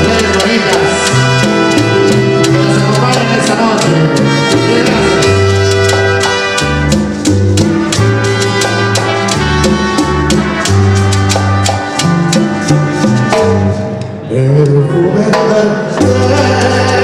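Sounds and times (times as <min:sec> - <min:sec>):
maracas: 0:00.0 - 0:13.9
hand drums: 0:00.0 - 0:14.2
bass line: 0:00.0 - 0:17.0
brass: 0:00.0 - 0:17.0.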